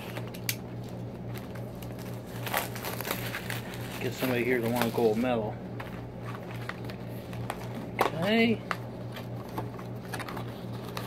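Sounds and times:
plastic shrink-wrap crinkling: 0.0s - 11.0s.

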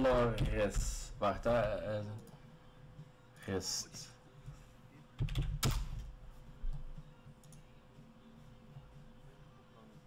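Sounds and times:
keyboard and mouse clicks: 5.2s - 6.1s.

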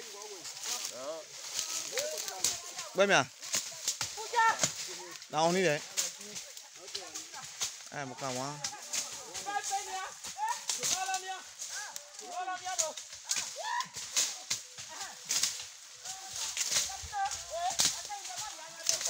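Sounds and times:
voices talking: 0.0s - 19.0s
machete cutting dry brush: 13.3s - 15.8s.

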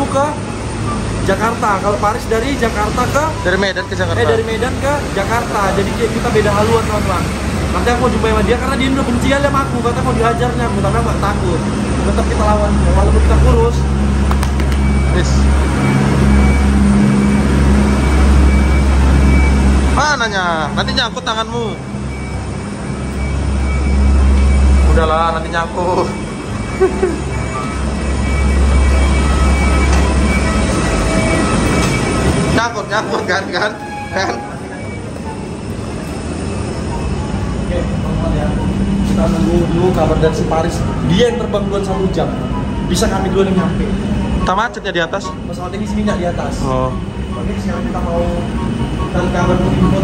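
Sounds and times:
low airport rumble: 0.0s - 50.0s.

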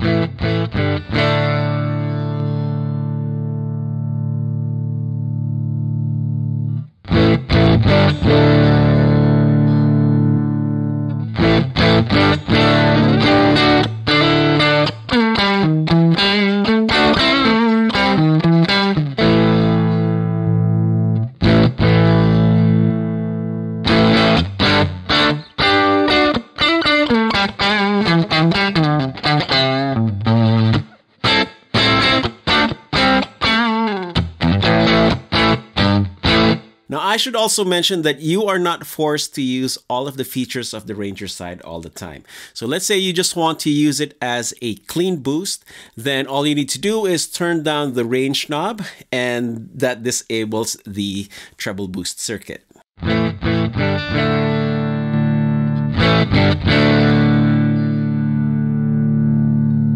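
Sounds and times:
overdriven electric guitar: 0.0s - 36.9s, 53.0s - 59.9s.

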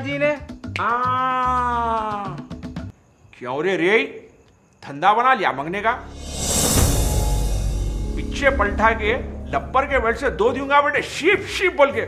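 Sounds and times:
background music with a beat: 1.9s - 2.9s
long held note sinking in pitch: 6.0s - 10.9s.

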